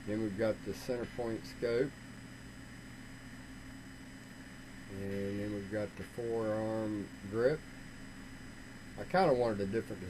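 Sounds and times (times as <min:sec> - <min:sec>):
faint hum: 0:00.0 - 0:10.0
low background hiss: 0:00.0 - 0:10.0.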